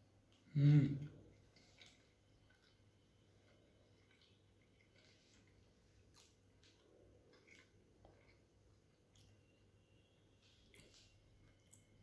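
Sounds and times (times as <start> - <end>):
mouth clicks chewing food: 1.1 - 9.6, 10.4 - 12.0.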